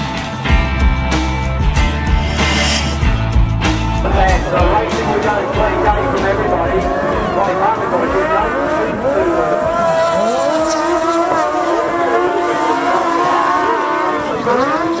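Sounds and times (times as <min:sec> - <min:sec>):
sidecar engines racing: 0:04.7 - 0:15.0.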